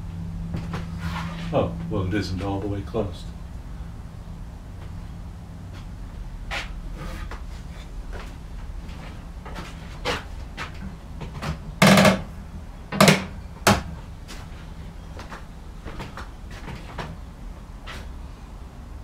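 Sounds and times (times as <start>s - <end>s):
wooden knocks: 11.2s - 12.3s, 12.9s - 13.9s.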